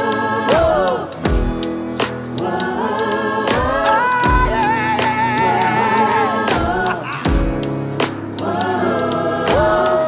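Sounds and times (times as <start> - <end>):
person singing sustained notes: 2.8 - 7.5.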